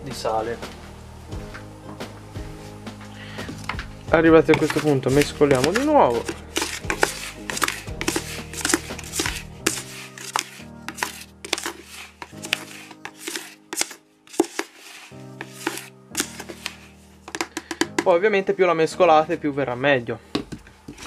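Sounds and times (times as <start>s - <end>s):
background music with held chords: 0.0s - 21.0s
scoop knocking plastic bucket: 3.4s - 14.8s, 15.4s - 18.1s
scoop scraping dry meal in bucket: 4.5s - 17.5s.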